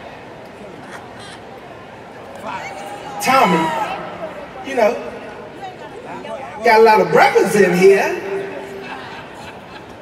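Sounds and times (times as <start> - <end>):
live audience in a hall: 0.0 - 10.0
person shouting: 3.2 - 4.1.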